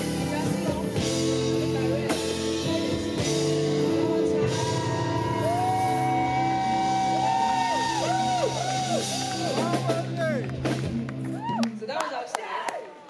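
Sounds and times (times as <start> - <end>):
keyboard and bass chord: 0.0 - 11.4.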